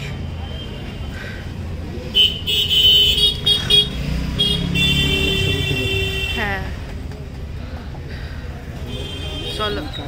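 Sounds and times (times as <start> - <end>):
low traffic rumble: 0.0 - 10.0
vehicle horn honking: 2.2 - 6.4.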